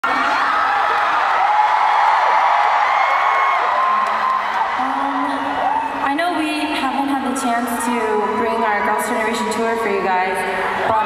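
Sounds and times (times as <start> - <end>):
crowd screaming and cheering: 0.0 - 6.2, 7.3 - 11.0.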